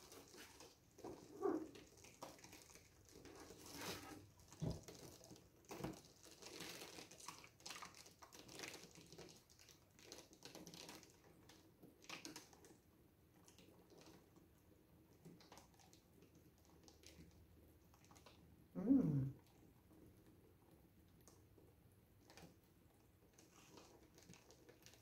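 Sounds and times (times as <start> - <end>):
faint crinkling and rustling: 0.0 - 18.7, 19.3 - 25.0.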